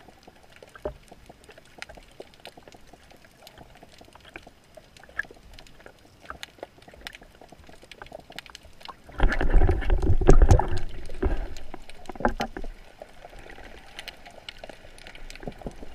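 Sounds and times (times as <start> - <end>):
faint underwater clicks and crackles: 0.0 - 15.9.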